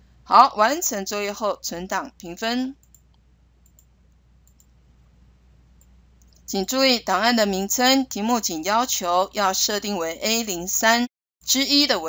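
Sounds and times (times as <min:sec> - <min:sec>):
computer mouse clicks: 0:02.8 - 0:04.8, 0:05.8 - 0:06.5.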